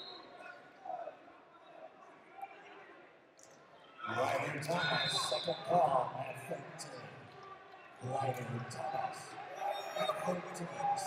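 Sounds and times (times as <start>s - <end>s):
man speaking: 4.1s - 7.0s, 8.0s - 9.3s, 10.0s - 11.0s.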